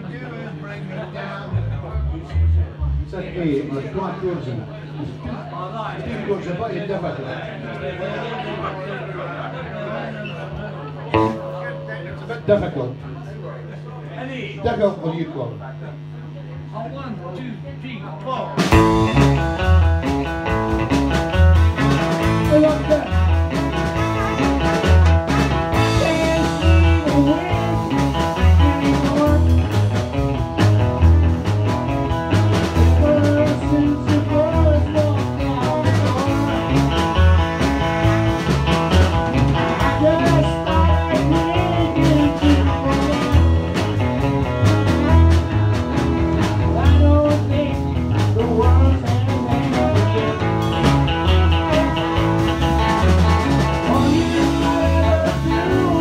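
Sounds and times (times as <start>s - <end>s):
live blues-rock band: 1.5s - 3.7s, 10.3s - 12.6s, 18.6s - 56.0s
man singing into microphone: 25.9s - 27.7s, 28.6s - 29.7s, 32.9s - 36.9s, 39.7s - 43.5s, 46.6s - 52.2s, 53.8s - 56.0s.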